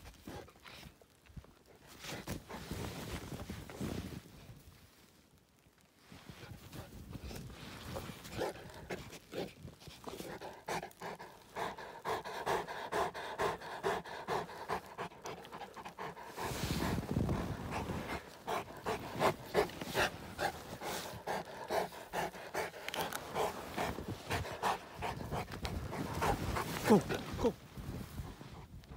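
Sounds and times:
dog panting: 7.9 - 27.5.

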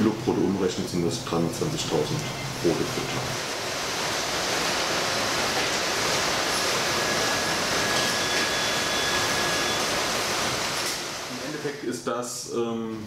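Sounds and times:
machinery hiss: 0.4 - 12.9
faint high whines: 5.6 - 12.0.

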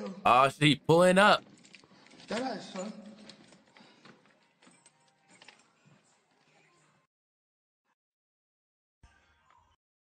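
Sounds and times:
faint clicks and rustles: 3.2 - 6.7.

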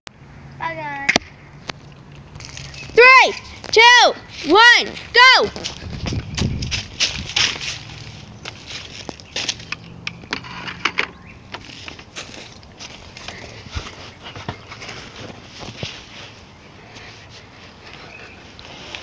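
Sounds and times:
handheld camera rustling: 1.6 - 19.0
footsteps crunching through dry leaves: 2.2 - 9.9, 11.4 - 19.0.

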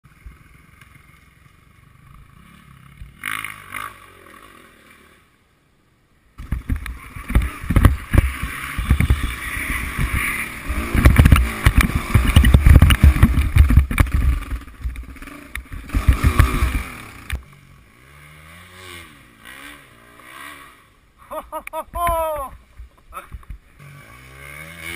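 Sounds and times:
motorcycle engine revving: 0.1 - 5.4, 6.4 - 24.9.

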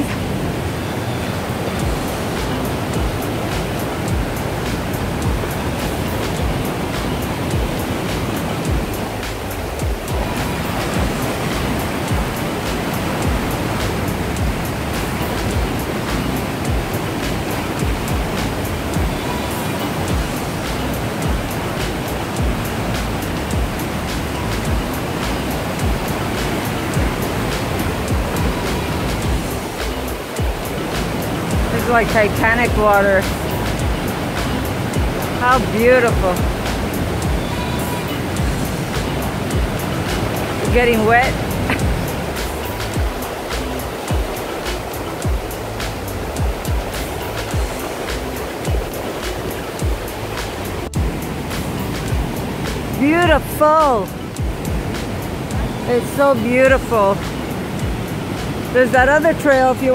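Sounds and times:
rapids and waterfall rushing: 0.0 - 59.9.

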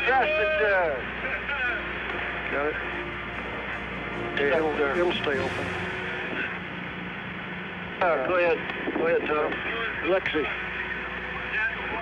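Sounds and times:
low even hum: 1.0 - 9.3.

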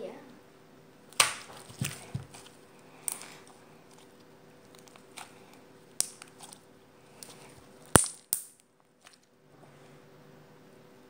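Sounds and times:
slime popping: 1.1 - 4.1, 5.9 - 6.6.

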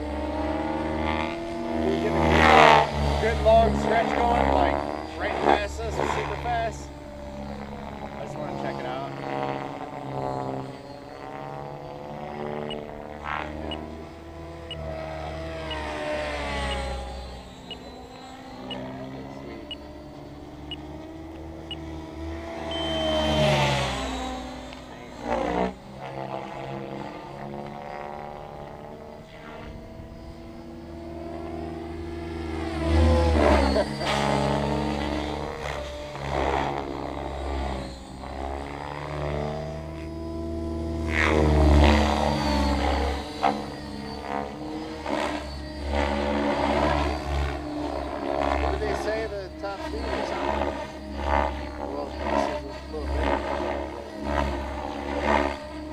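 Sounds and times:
rc helicopter rotor whine: 0.0 - 55.9.

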